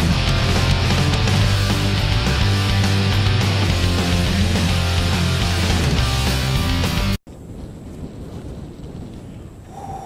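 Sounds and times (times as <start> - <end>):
wind buffeting microphone: 7.3 - 10.0.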